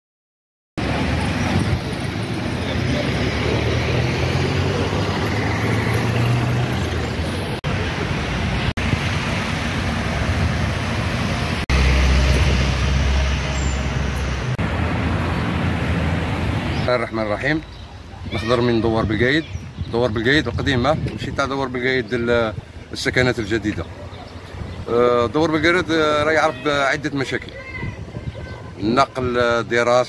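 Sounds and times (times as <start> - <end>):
car engines and tyres on road: 0.8 - 30.0.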